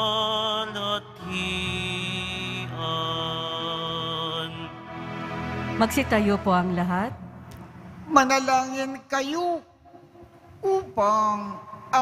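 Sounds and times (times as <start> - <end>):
organ playing held chords: 0.0 - 8.1.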